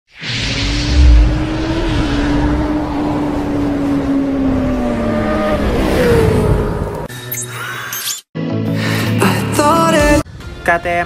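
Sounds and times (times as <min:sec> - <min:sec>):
engine note: 0:00.4 - 0:07.1.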